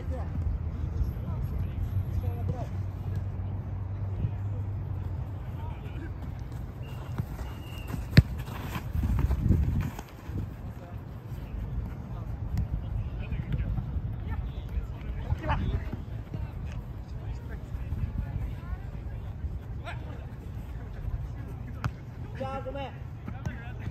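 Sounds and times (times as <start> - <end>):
players' footsteps: 5.0 - 23.9
football kicked with a thud: 7.9 - 9.9.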